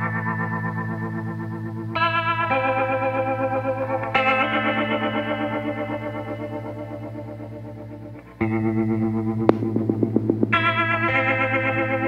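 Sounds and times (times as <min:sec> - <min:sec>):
electric guitar chords: 0:00.0 - 0:12.0.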